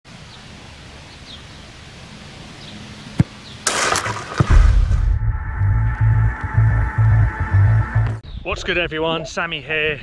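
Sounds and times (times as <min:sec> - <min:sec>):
sharp thump: 0:03.2 - 0:05.5.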